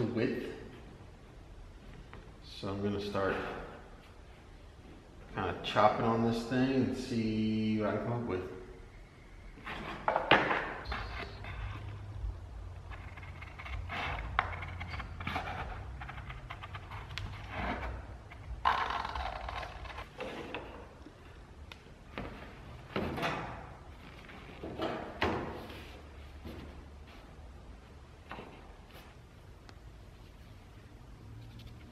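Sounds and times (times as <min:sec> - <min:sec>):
low steady hum: 0:00.0 - 0:31.9
board scraping and rustling: 0:12.8 - 0:21.0.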